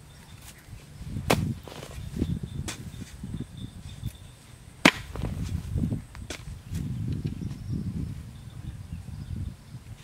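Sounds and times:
metal hoe chopping into soil: 1.2 - 2.0, 4.8 - 5.5.

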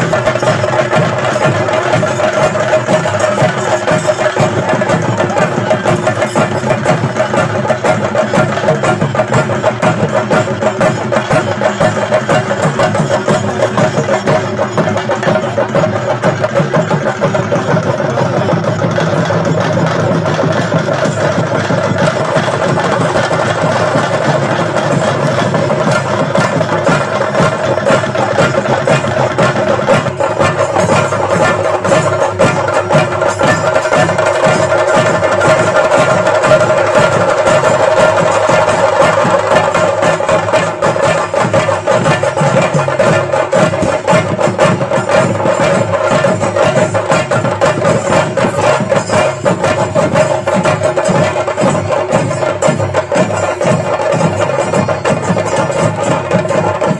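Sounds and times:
fast continuous drumming: 0.0 - 56.9.

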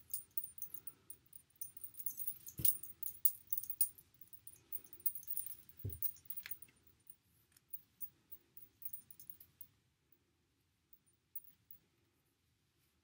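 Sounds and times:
metal bracelet jingling: 0.0 - 6.7, 8.8 - 9.6.

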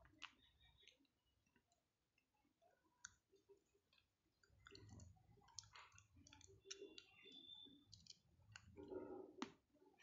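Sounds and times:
faint irregular clicks: 0.0 - 10.0.

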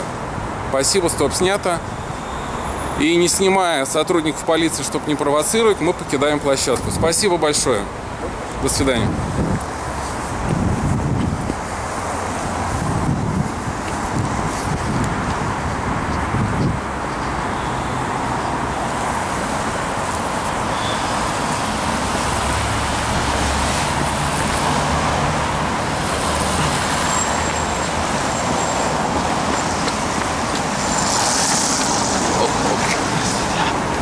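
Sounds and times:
cars passing on busy road: 0.0 - 34.0
heavy vehicle engine hum: 7.9 - 34.0.

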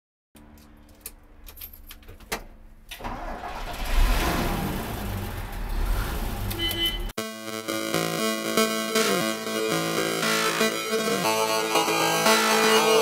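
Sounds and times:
vehicle engine rumbling: 0.4 - 7.2
music beat with synth notes: 7.2 - 13.0.

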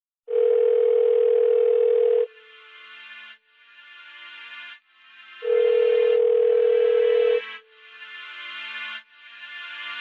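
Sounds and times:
telephone tone: 0.3 - 2.3, 5.4 - 7.5.

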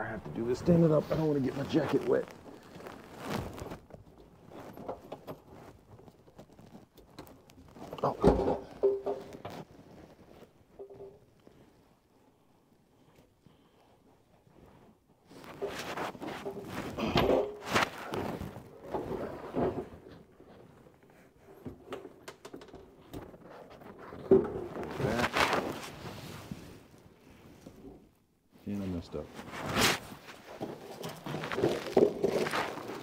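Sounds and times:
hands working on plastic pipes: 0.0 - 33.0.

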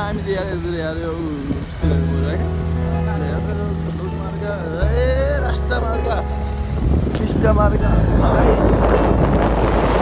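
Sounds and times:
vehicle engine and road rumble: 0.0 - 10.0
wind noise on microphone: 6.4 - 10.0.

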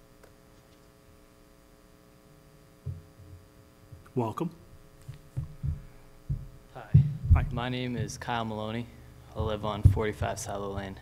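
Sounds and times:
faint electrical hum: 0.0 - 11.0
dull low thuds: 5.1 - 8.4, 9.3 - 11.0.

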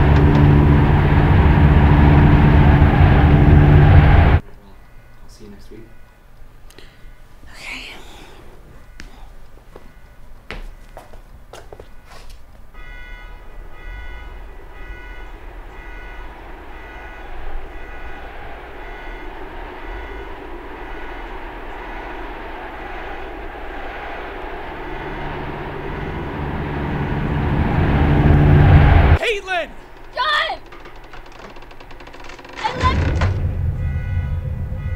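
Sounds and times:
low rumbling noise: 0.0 - 4.4, 12.7 - 34.9.

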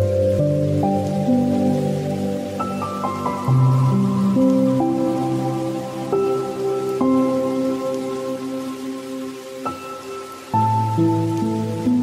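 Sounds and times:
rain falling: 0.0 - 12.0
slow soft instrumental music: 0.0 - 12.0.

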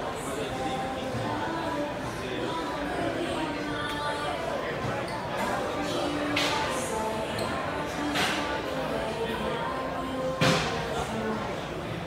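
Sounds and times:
crowd chatter in echoing hall: 0.0 - 12.0.

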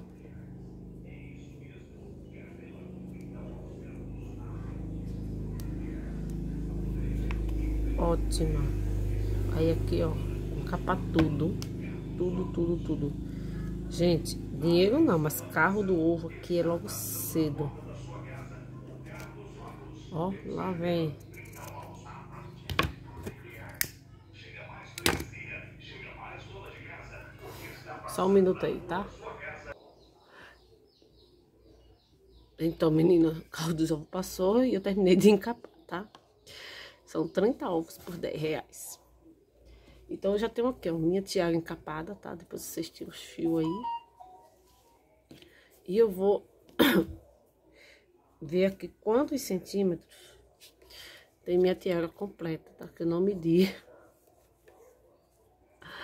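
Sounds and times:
recorded voice over loudspeaker: 0.0 - 29.8
truck engine hum: 0.2 - 22.4
loudspeaker announcement: 6.9 - 21.2.

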